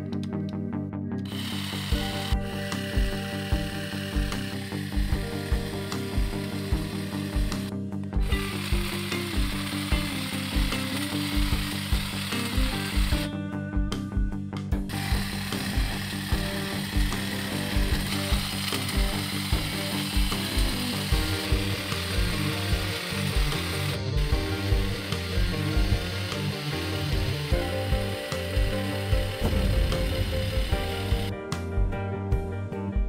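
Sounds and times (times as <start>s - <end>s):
background music with beat: 0.0s - 33.0s
hedge trimmer cutting hedge: 1.2s - 13.3s, 14.9s - 31.3s.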